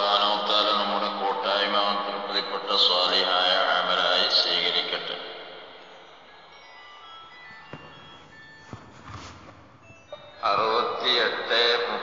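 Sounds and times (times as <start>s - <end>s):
faint chime-like tones: 4.2s - 12.0s.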